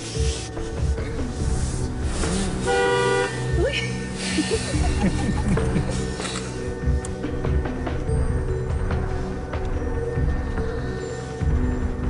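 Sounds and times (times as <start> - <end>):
soft background music: 0.0 - 12.0
car horn: 2.7 - 3.6.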